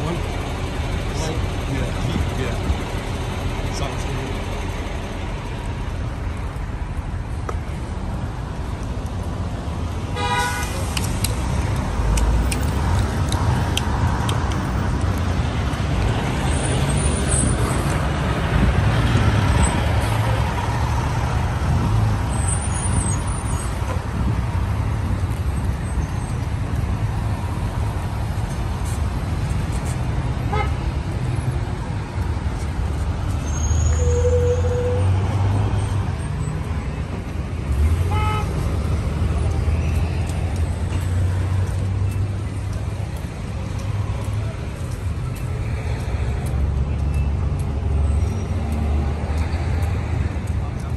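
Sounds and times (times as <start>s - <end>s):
traffic driving past: 0.0s - 50.9s
car horn toot: 10.1s - 10.8s, 38.1s - 38.5s.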